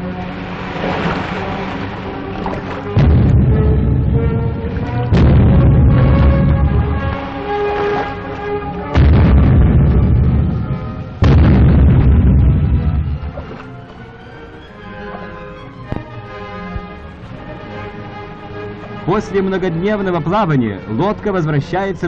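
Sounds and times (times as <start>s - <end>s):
newsreel music: 0.0s - 22.0s
heavy gunfire booms: 3.0s - 4.2s, 5.1s - 7.2s, 9.0s - 13.4s.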